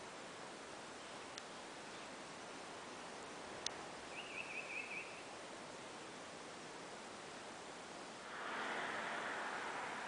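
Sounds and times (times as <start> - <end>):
outdoor background noise: 0.0 - 10.0
bird warbling call: 4.1 - 5.2.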